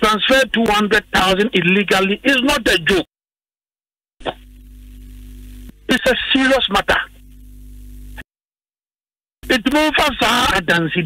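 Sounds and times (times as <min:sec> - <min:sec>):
electrical mains hum: 0:04.3 - 0:08.2.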